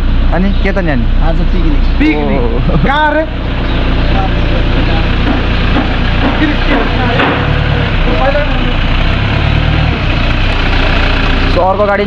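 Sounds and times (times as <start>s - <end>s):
truck engine low rumble: 0.0s - 12.0s.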